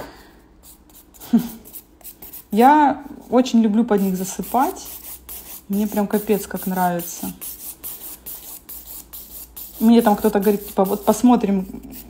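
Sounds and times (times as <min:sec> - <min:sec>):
nail file scraping a nail: 0:00.7 - 0:02.6, 0:04.0 - 0:12.0.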